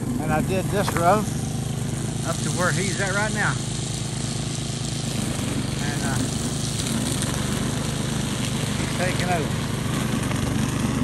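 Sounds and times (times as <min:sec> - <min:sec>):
small engine running: 0:00.0 - 0:11.0.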